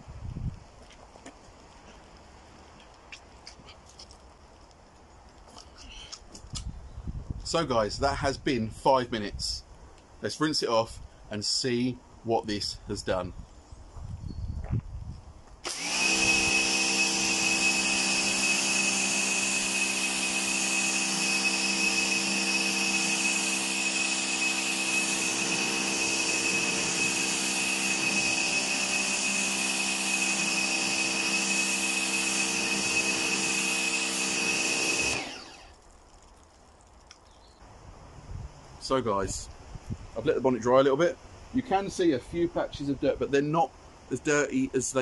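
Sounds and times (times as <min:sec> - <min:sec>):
pressure washer running: 0:15.6 - 0:35.8
water spraying: 0:15.7 - 0:37.4.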